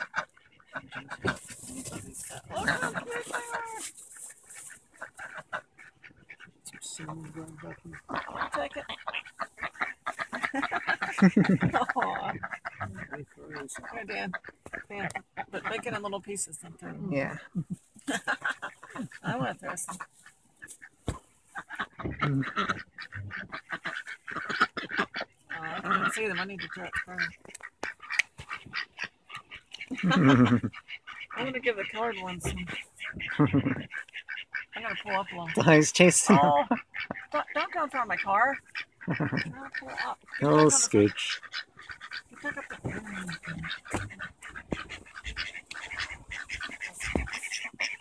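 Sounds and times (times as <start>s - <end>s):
ducks quacking: 0.0s - 48.0s.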